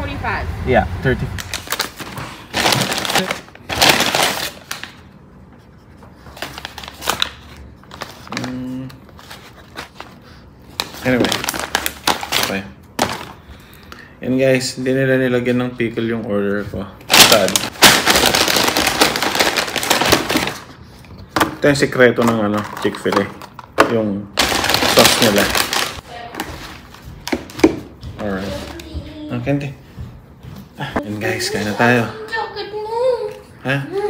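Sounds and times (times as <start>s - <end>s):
paper and foil wrapping crinkling: 1.4s - 5.1s, 6.3s - 13.8s, 17.1s - 21.0s, 24.4s - 28.8s.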